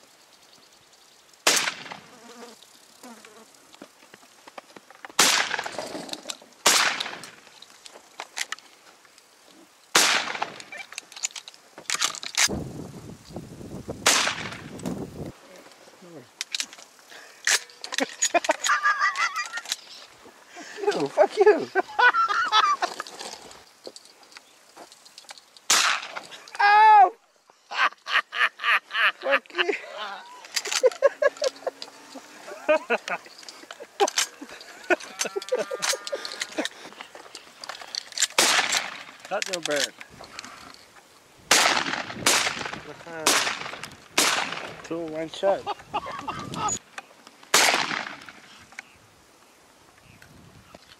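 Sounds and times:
shotgun shot: 0:01.4 - 0:02.0, 0:05.2 - 0:05.7, 0:06.6 - 0:07.2, 0:09.9 - 0:10.6, 0:14.0 - 0:14.7, 0:25.7 - 0:26.2, 0:38.4 - 0:39.0, 0:41.5 - 0:44.8, 0:47.5 - 0:48.4
men talking and laughing: 0:17.1 - 0:23.4, 0:27.5 - 0:37.3, 0:44.9 - 0:46.8.

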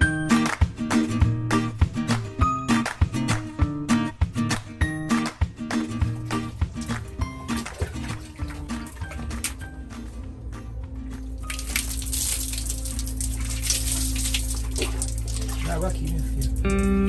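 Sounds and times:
background music: 0:00.0 - 0:17.0
water poured over face splashing: 0:06.3 - 0:09.7, 0:11.2 - 0:17.0.

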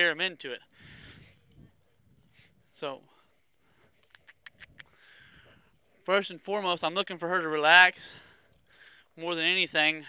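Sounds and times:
short sharp kissing smooches: 0:04.0 - 0:05.0.

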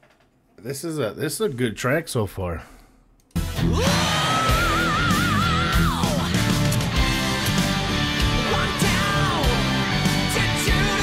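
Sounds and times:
electric guitar: 0:03.4 - 0:11.0
rock band playing: 0:03.4 - 0:11.0
male rock singer belting: 0:03.6 - 0:06.5, 0:08.2 - 0:11.0.

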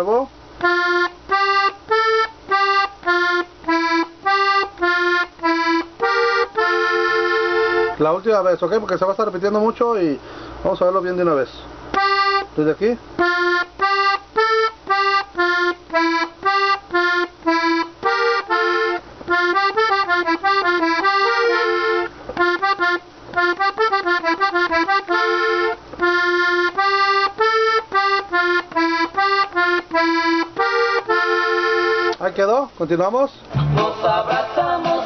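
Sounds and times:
button accordion melody: 0:00.6 - 0:08.2, 0:11.9 - 0:32.2, 0:33.6 - 0:35.0.

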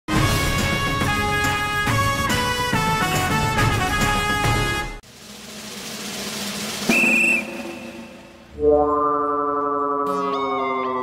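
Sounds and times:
short shrill whistle: 0:06.9 - 0:08.3.

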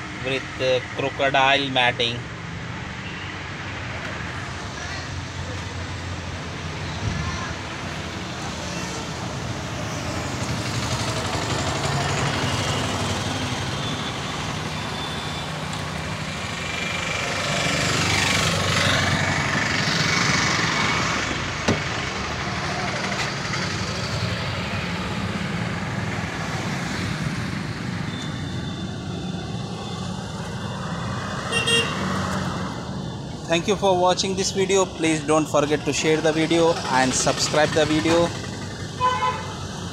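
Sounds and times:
traffic engine rumble: 0:00.0 - 0:39.9.

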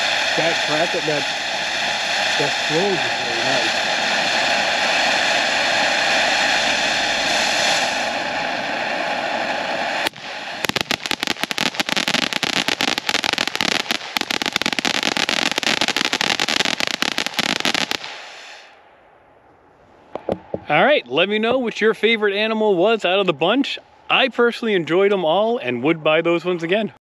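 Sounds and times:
firework crackling: 0:00.0 - 0:08.3, 0:09.7 - 0:18.8
firework fountain hissing: 0:00.0 - 0:18.8.

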